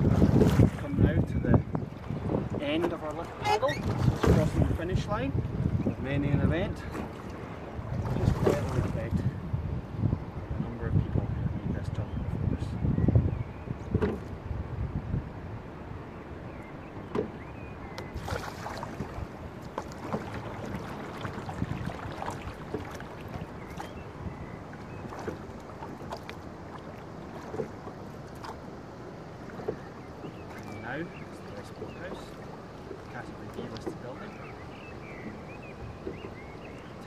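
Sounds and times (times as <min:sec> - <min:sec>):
oar knocks and splashes: 0:00.0 - 0:01.0, 0:01.6 - 0:04.9, 0:06.6 - 0:09.2, 0:13.8 - 0:14.4, 0:16.6 - 0:37.0
water running along hull: 0:00.0 - 0:37.0.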